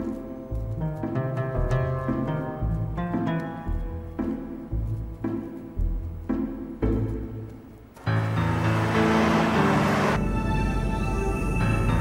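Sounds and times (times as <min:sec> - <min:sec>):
suspenseful soundtrack music: 0:00.0 - 0:12.0.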